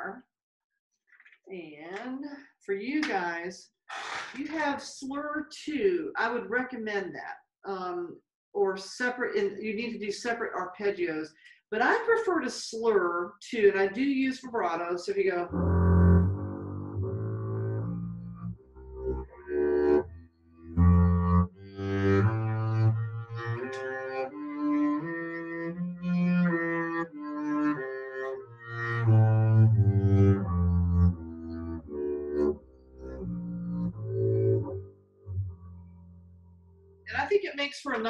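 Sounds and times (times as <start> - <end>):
bowed double bass scale: 15.5 - 37.2.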